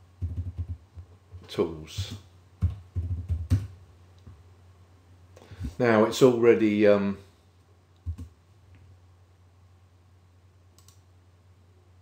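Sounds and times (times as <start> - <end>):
low steady hum: 0.0 - 12.0
computer mouse clicks: 10.8 - 11.1.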